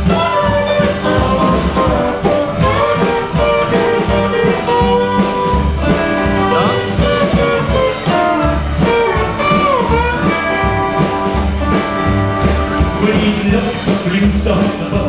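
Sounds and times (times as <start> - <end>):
steel guitar sliding lead: 0.0 - 13.2
acoustic guitar: 0.0 - 15.0
upright bass: 0.0 - 15.0.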